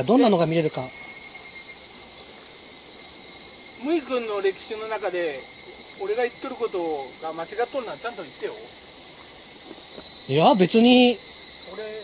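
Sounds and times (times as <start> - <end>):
cicadas droning: 0.0 - 12.0.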